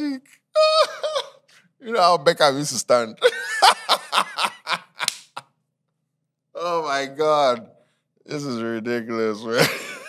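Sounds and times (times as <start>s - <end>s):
man laughing: 0.6s - 1.5s, 3.2s - 5.4s, 9.5s - 10.0s
hand claps: 5.0s - 5.5s.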